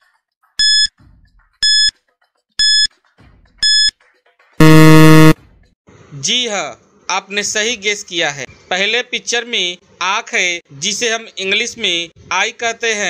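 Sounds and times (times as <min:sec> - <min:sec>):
harsh buzzer: 0:00.6 - 0:00.9, 0:01.6 - 0:01.9, 0:02.6 - 0:02.9, 0:03.6 - 0:03.9, 0:04.6 - 0:05.4
short electronic beeps: 0:00.6 - 0:00.9, 0:01.6 - 0:01.9, 0:02.6 - 0:02.9, 0:03.6 - 0:03.9, 0:04.6 - 0:05.4.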